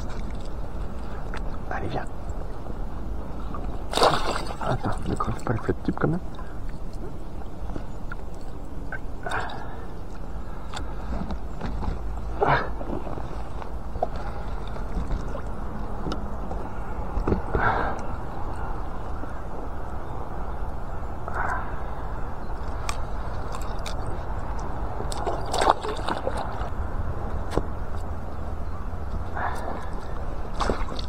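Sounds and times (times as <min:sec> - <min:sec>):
steady low rumble: 0:00.0 - 0:31.0
water splashing: 0:03.8 - 0:05.6, 0:22.8 - 0:26.8, 0:30.5 - 0:31.0.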